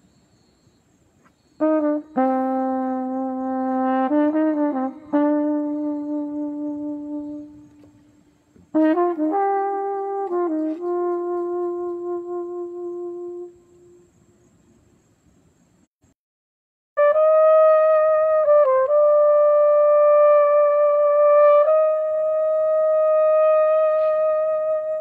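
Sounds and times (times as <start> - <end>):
solo flugelhorn playing: 1.6 - 14.2, 17.0 - 25.0.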